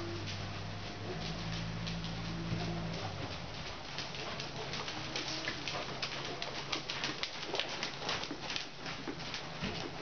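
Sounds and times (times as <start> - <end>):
horse hoofbeats trotting on sand: 0.0 - 10.0.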